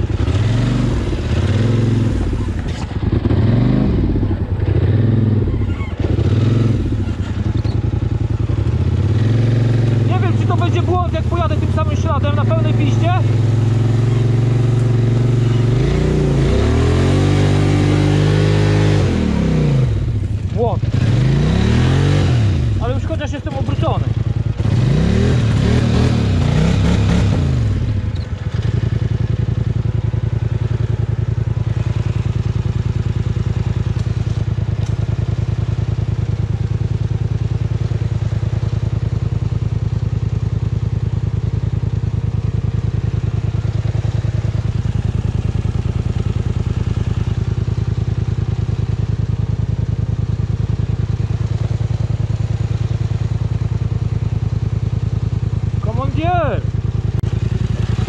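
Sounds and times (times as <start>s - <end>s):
atv engine revving and idling: 0.0s - 58.0s.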